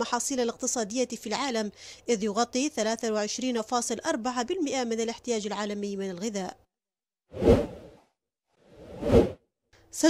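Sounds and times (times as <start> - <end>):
transition whoosh: 7.4 - 8.0, 8.7 - 9.4.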